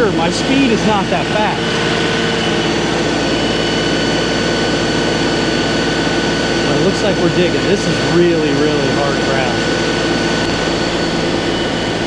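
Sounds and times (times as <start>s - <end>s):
diesel tractor engine running: 0.0s - 12.0s
high whine: 0.0s - 12.0s.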